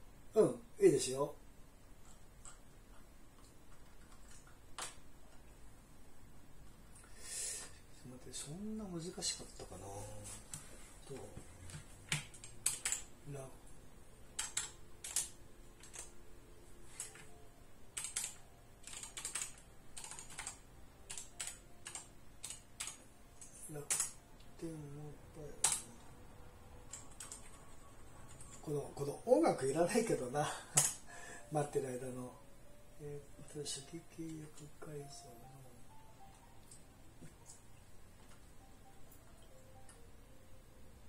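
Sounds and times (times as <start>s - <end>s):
computer mouse clicks: 2.0s - 5.5s
keyboard typing: 2.0s - 5.6s, 10.5s - 13.4s, 14.2s - 16.2s, 16.8s - 24.6s, 25.4s - 26.1s, 26.8s - 28.8s, 30.7s - 31.1s, 34.1s - 40.1s.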